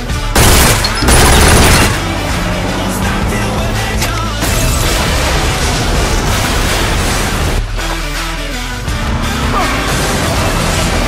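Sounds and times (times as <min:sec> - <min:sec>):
music: 0:00.0 - 0:11.0
rapid gunfire: 0:00.3 - 0:02.1.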